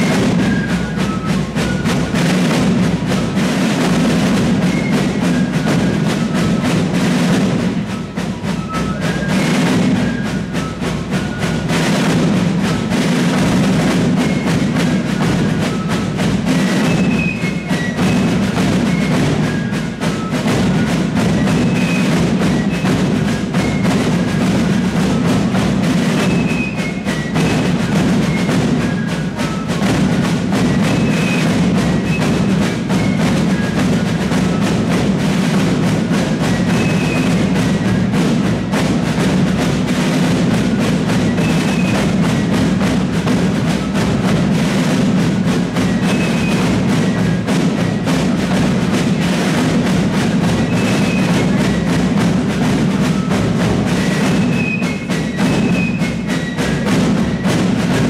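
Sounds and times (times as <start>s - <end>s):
snare and bass drums beating: 0.0s - 58.0s.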